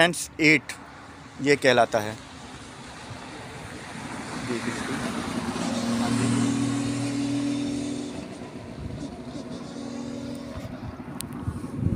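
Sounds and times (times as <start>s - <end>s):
car passing by: 2.3s - 11.9s.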